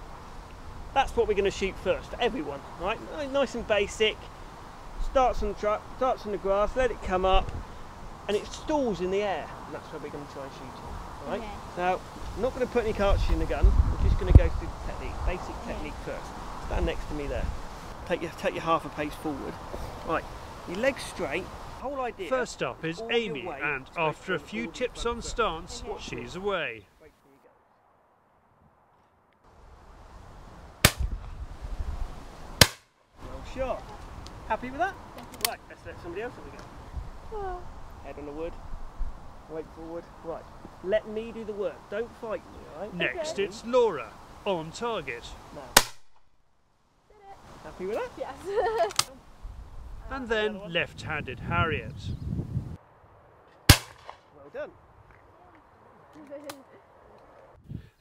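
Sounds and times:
shotgun shots: 0:32.6 - 0:32.8, 0:45.8 - 0:46.1, 0:53.7 - 0:54.3.

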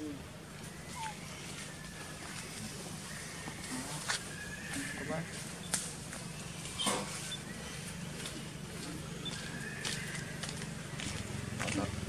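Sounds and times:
macaques squeaky call: 0:00.7 - 0:05.8, 0:09.1 - 0:10.5.

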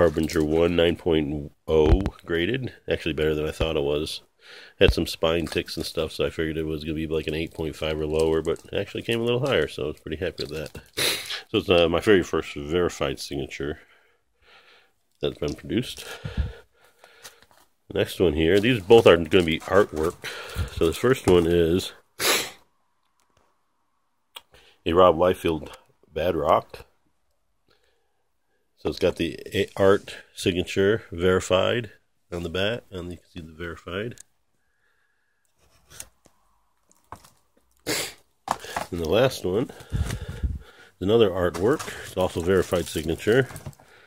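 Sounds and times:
man's voice: 0:00.0 - 0:04.2, 0:04.8 - 0:10.8, 0:17.9 - 0:22.0, 0:38.7 - 0:43.7
plastic slabs shifted in cardboard box: 0:38.5 - 0:39.0, 0:41.4 - 0:43.9.

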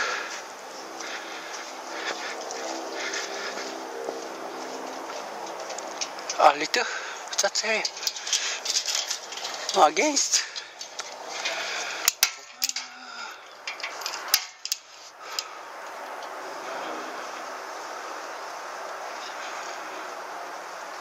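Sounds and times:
steady rustling hiss: 0:00.0 - 0:21.0
metallic clicks and knocks: 0:10.6 - 0:14.9.

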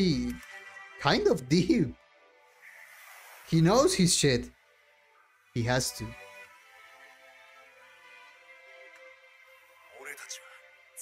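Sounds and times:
quiet sustained music chord: 0:00.0 - 0:11.0.

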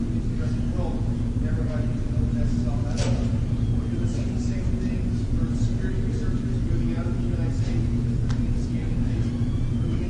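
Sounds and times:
distant man's voice: 0:00.0 - 0:10.0
low hum: 0:00.0 - 0:10.0.

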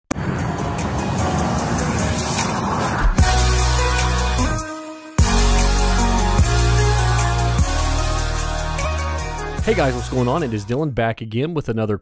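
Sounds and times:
rushing rumbling sound effect: 0:00.1 - 0:04.0
intro music: 0:00.1 - 0:10.8.

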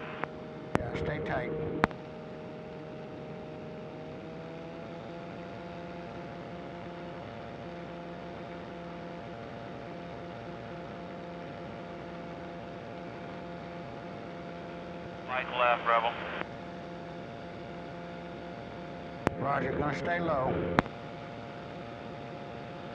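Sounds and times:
aircraft engine droning: 0:00.0 - 0:22.9
steady engine whine: 0:00.0 - 0:22.9.

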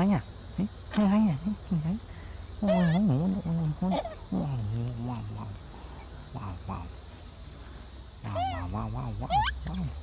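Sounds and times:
wavering wordless voice calls: 0:02.6 - 0:05.6, 0:08.2 - 0:10.0.

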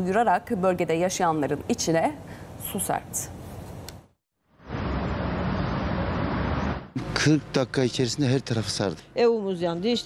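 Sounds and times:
low rushing noise: 0:04.5 - 0:07.2.

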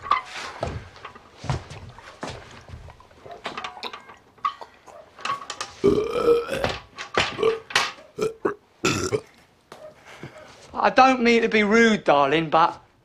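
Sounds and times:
woman retching into metal bucket: 0:00.0 - 0:09.2.

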